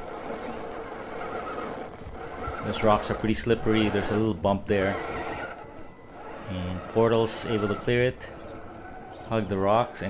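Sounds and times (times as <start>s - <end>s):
electric motor whirring: 0.0s - 10.0s.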